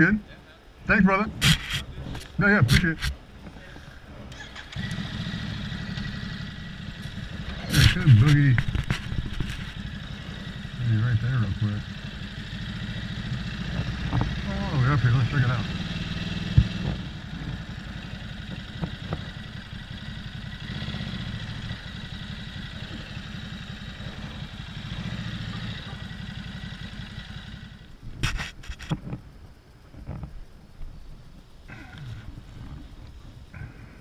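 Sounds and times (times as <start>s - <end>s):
motorcycle engine at low speed: 0.0s - 34.0s.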